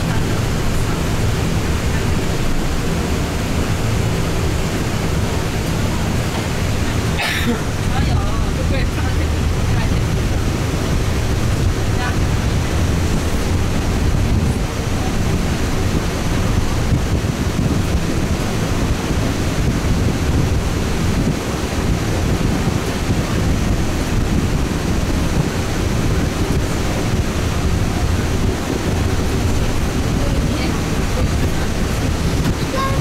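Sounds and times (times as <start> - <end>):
deep rumble: 0.0 - 33.0
wind and road noise in bus: 0.0 - 33.0
wind buffeting microphone: 0.0 - 33.0.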